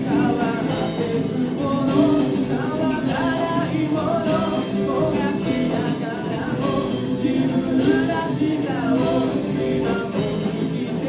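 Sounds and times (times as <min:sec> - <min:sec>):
electric guitar: 0:00.0 - 0:11.0
live rock band playing: 0:00.0 - 0:11.0
person singing: 0:00.0 - 0:11.0.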